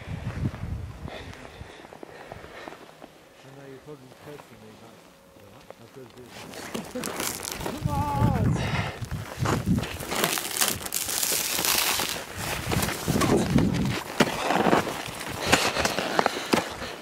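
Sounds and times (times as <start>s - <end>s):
crunching and scraping of snow: 1.2s - 17.0s.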